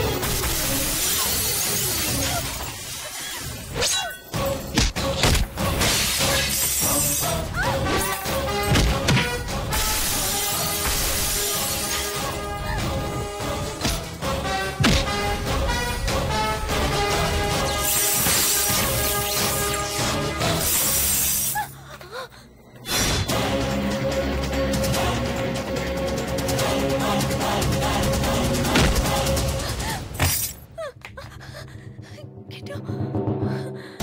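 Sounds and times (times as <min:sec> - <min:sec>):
action film music: 0:00.0 - 0:34.0
glass shattering: 0:00.2 - 0:03.8, 0:10.0 - 0:12.4
glass bangles shattering: 0:00.6 - 0:04.3, 0:30.2 - 0:30.7.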